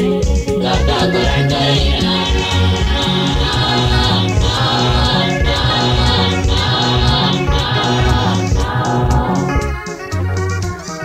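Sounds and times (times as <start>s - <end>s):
bass line: 0.0s - 11.0s
choir singing held chords: 0.5s - 10.3s.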